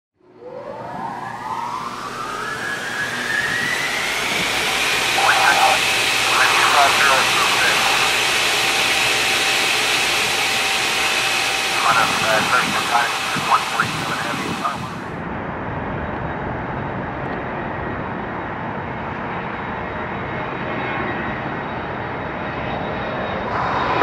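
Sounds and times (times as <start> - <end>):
jet engine whine: 0.2 - 24.0
loud rushing rumble: 23.3 - 24.0.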